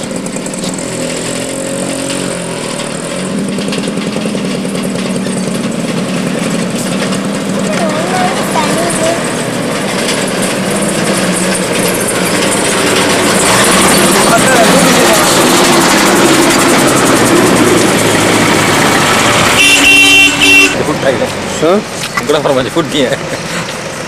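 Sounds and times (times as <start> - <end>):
road traffic: 0.0 - 24.0
indistinct voices: 6.7 - 23.2
vehicle horn toots: 19.4 - 21.0.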